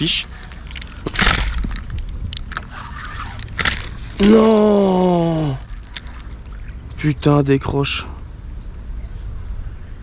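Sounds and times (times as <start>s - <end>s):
fishing gear knocks and scrapes: 0.0s - 4.8s, 5.6s - 6.9s.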